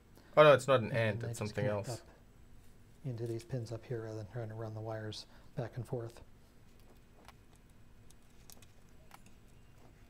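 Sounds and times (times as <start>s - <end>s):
wires clicking into breadboard: 6.8s - 9.6s.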